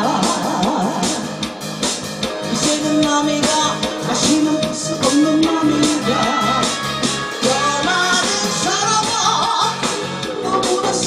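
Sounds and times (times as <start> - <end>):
guitar-led backing track with beat: 0.0 - 11.0.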